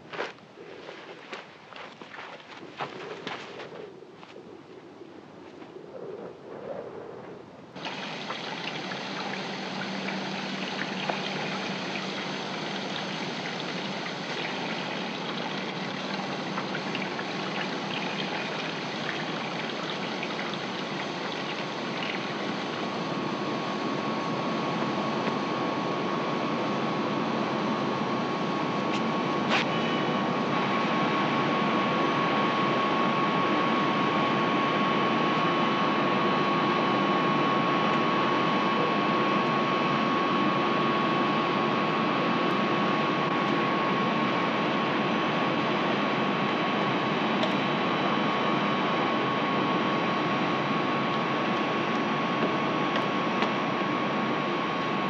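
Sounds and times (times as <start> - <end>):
low hum: 0.0 - 55.0
high whine: 2.5 - 55.0.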